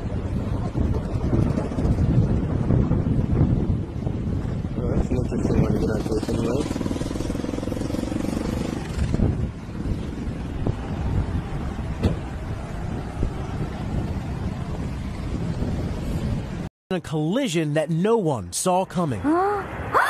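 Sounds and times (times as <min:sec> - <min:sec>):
wind buffeting microphone: 0:00.0 - 0:16.7.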